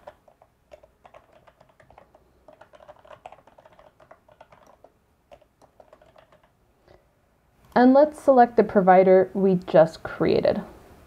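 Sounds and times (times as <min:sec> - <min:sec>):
faint keyboard typing: 0:00.0 - 0:06.6.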